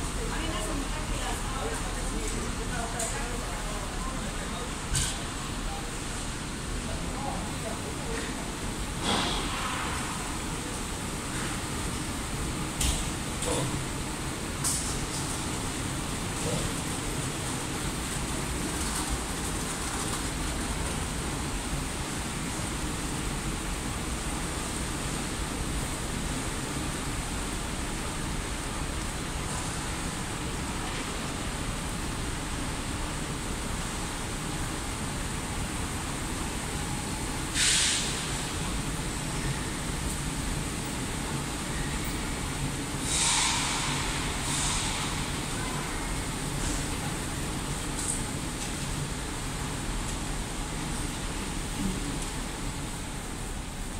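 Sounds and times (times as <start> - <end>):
airport terminal background noise: 0.0 - 53.9
short hisses: 37.6 - 38.1, 43.1 - 45.0.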